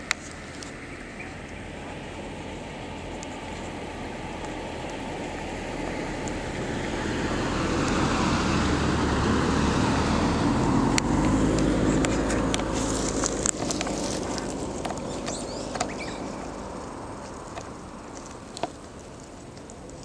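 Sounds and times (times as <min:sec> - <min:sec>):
road vehicle noise: 0:00.0 - 0:20.0.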